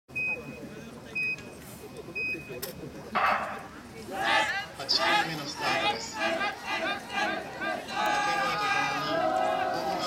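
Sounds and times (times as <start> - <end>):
crowd murmur: 0.1 - 10.0.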